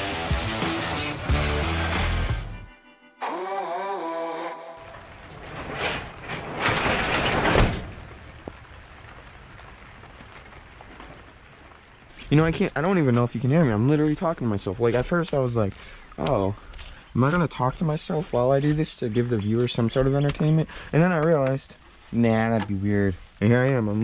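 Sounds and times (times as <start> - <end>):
background music with steady beat: 0.0 - 3.0
roll-up garage door rattling open: 4.8 - 9.1.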